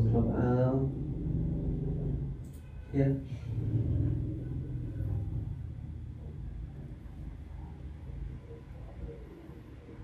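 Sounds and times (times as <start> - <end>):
low steady background rumble: 0.0 - 10.0.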